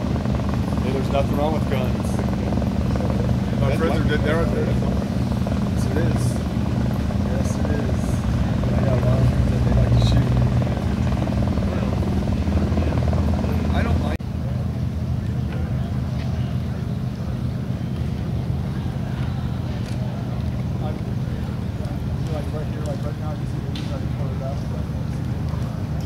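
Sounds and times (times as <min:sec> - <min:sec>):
plane engine idling: 0:00.0 - 0:26.0
propeller plane engine droning: 0:00.0 - 0:26.0.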